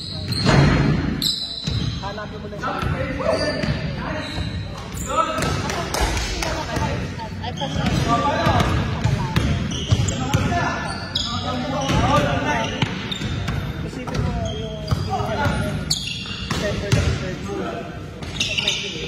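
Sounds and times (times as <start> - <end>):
sneaker squeaks: 0.0 - 17.4, 18.1 - 19.0.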